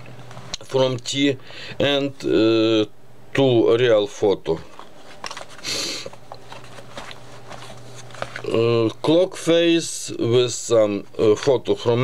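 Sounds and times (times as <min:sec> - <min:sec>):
steady low hum: 0:00.0 - 0:12.0
paper pages rustling: 0:04.7 - 0:09.2.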